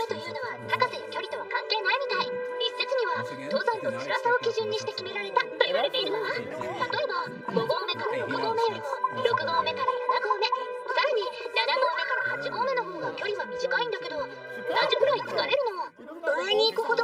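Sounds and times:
background music with held notes: 0.0s - 17.0s
spoken dialogue: 0.0s - 17.0s.

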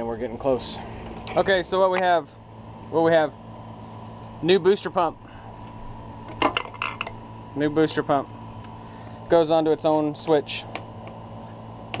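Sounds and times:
steady low pump hum: 0.0s - 12.0s.

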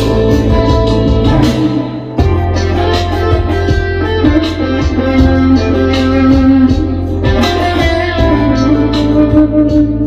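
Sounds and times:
bass line: 0.0s - 10.0s
electric guitar: 0.0s - 10.0s
drum hits: 0.3s - 4.4s.

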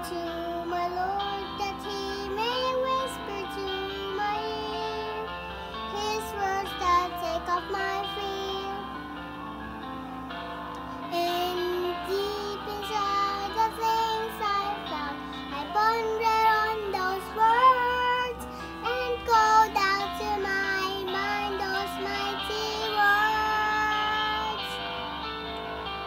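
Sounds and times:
girl singing: 0.0s - 9.0s, 11.1s - 24.8s
backing track music: 0.0s - 26.0s.

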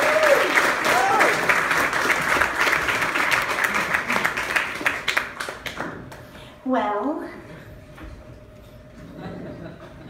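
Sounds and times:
murmur of live audience: 0.0s - 6.5s, 8.7s - 10.0s
low chatter and chuckling: 8.8s - 10.0s.

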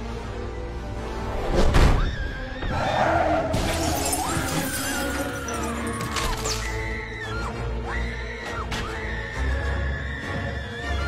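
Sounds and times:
dramatic music: 0.0s - 11.0s.

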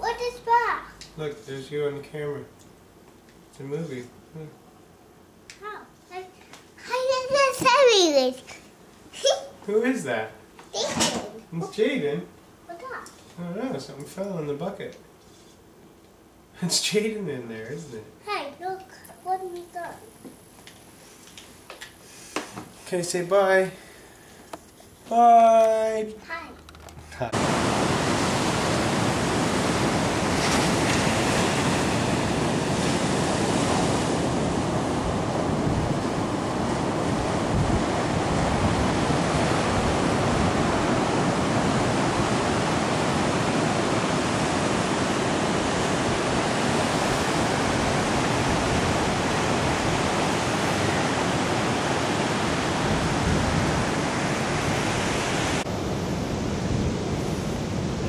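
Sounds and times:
waves breaking on stony beach: 27.4s - 58.0s.

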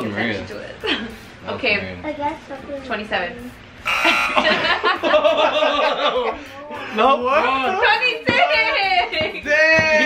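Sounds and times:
group of people laughing: 3.9s - 6.8s.

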